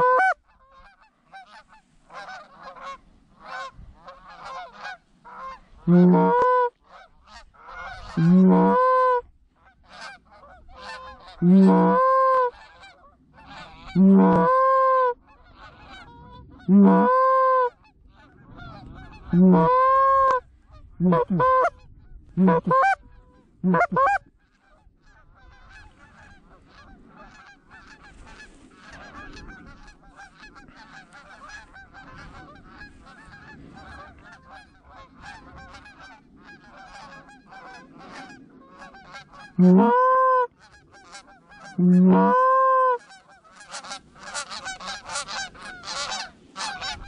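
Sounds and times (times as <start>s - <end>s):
distant flock of geese: 0.0s - 47.0s
goose call honks: 0.0s - 47.0s.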